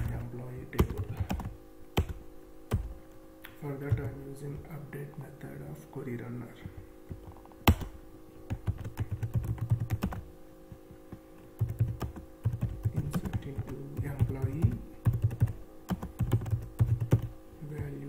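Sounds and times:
computer keyboard typing: 0:00.0 - 0:02.9, 0:07.1 - 0:10.2, 0:11.6 - 0:17.9.

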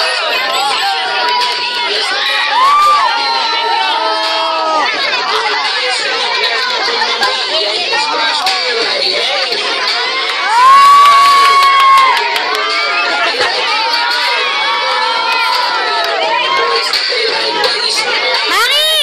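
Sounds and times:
loud held shout: 0:00.0 - 0:05.7, 0:10.4 - 0:17.0, 0:18.5 - 0:19.0
children shouting and cheering: 0:00.0 - 0:19.0.

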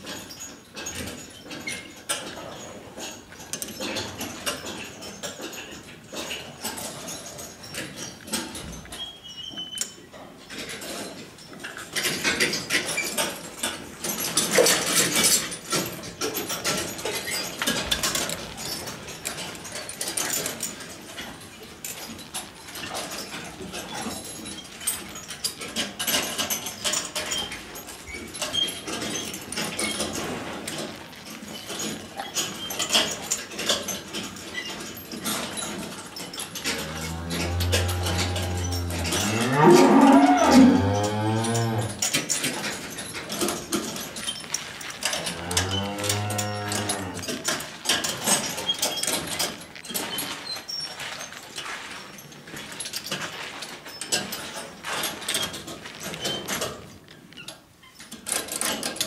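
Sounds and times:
scattered clicks and rustling: 0:00.0 - 0:59.0
cow mooing: 0:36.7 - 0:42.0, 0:45.2 - 0:47.3.

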